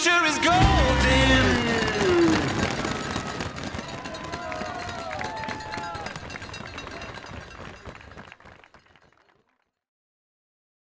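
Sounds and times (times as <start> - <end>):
crowd voices and shouts: 0.0 - 7.5.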